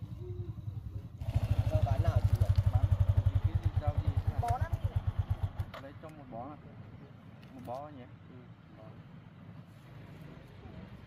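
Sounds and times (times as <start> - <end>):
motorcycle engine idling: 0.0 - 7.4.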